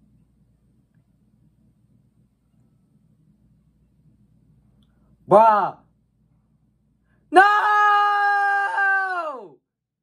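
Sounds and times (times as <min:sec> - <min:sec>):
young man shouting: 0:05.3 - 0:05.8, 0:07.3 - 0:09.6.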